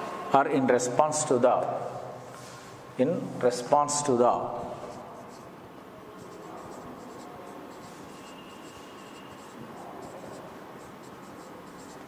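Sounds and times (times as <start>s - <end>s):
marker scratching on whiteboard: 4.4s - 12.0s.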